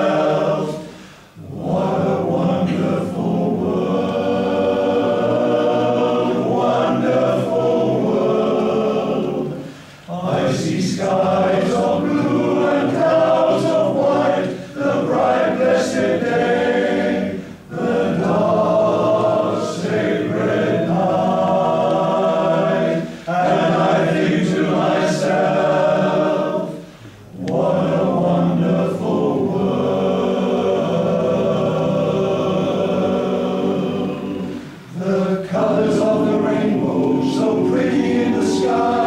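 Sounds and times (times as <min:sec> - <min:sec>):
male voice choir singing: 0:00.0 - 0:39.0.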